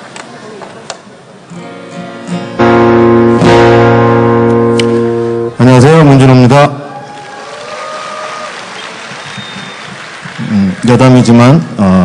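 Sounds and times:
man speaking over pa: 5.6 - 6.8.

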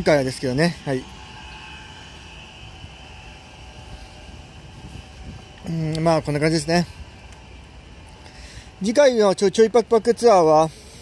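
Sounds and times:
distant expressway traffic rumble: 0.0 - 11.0
high insect drone: 0.0 - 11.0.

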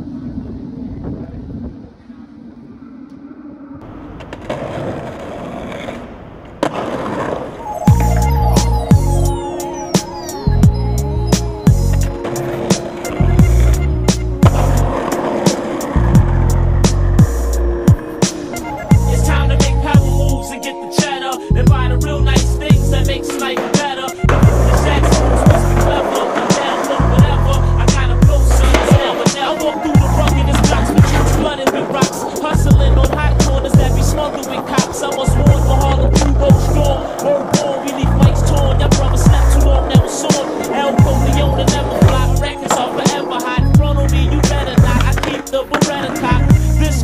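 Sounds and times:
skateboards popping and landing: 3.8 - 10.1, 11.3 - 20.2, 22.4 - 47.0
wheels rolling on concrete: 3.8 - 10.4, 11.3 - 47.0
music with heavy bass beat: 7.9 - 34.3, 35.1 - 47.0.

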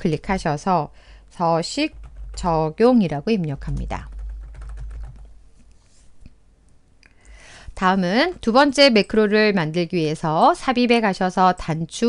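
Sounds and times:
computer keyboard typing: 1.8 - 5.4, 7.9 - 9.1.

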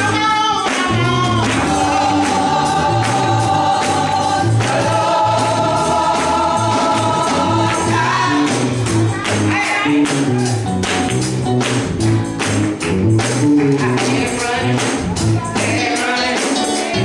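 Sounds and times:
steady drum beat: 0.0 - 16.6
pulsing bass line: 0.9 - 15.8
choir singing: 1.5 - 8.7, 15.6 - 17.0.

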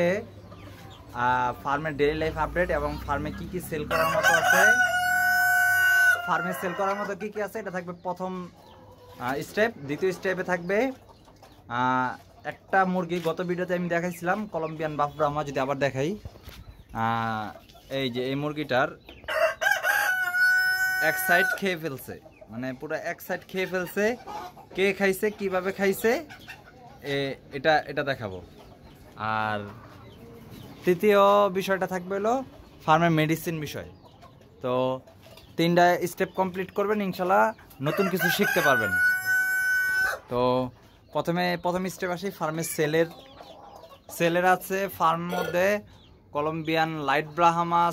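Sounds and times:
chickens calling: 0.0 - 47.9
rooster crowing: 3.9 - 7.1, 19.3 - 21.6, 37.8 - 40.2.

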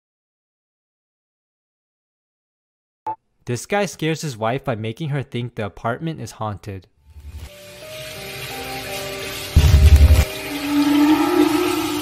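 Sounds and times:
eerie music of held tones: 8.1 - 12.0.

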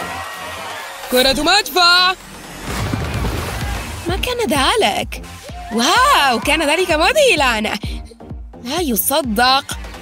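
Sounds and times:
big splash into pool: 2.6 - 4.0.

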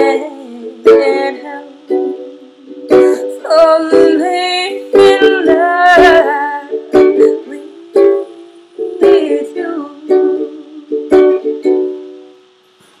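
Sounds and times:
acoustic string instrument strumming: 0.0 - 13.0.

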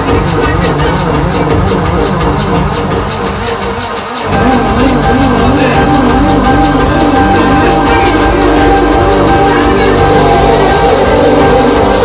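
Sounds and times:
hard dance music: 0.0 - 12.0
wavering synth line: 0.0 - 12.0.

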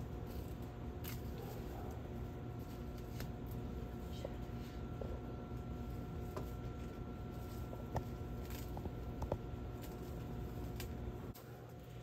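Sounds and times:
steady low rumble: 0.0 - 12.0
pruning shears snipping stem: 0.2 - 2.0, 7.9 - 11.0.

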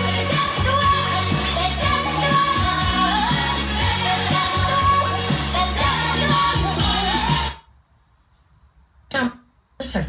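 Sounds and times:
pop song with singing on radio: 0.0 - 7.8.

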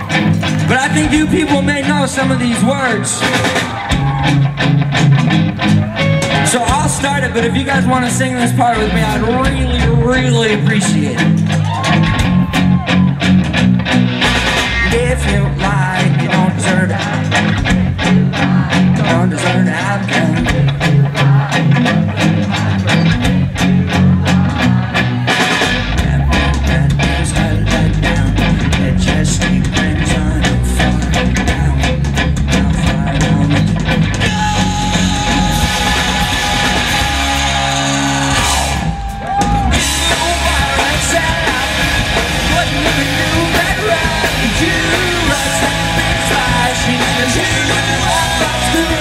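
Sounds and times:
distorted electric guitars: 0.0 - 49.0
drum kit: 0.0 - 49.0
person singing: 18.0 - 23.2, 23.8 - 38.9, 39.8 - 49.0.

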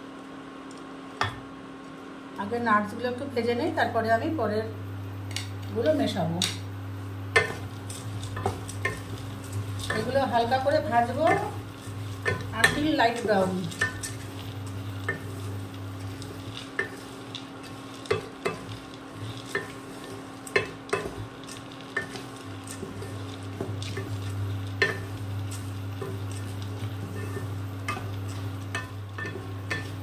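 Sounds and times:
cooktop low hum: 0.0 - 30.0
seeds and nuts sizzling in pan: 2.4 - 30.0
spatula scraping and knocking pan: 7.3 - 30.0.

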